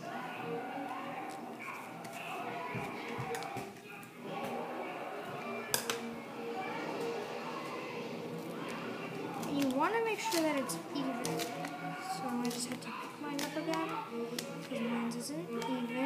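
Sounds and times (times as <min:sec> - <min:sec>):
indistinct television speech: 0:00.0 - 0:16.0
television music: 0:00.0 - 0:16.0.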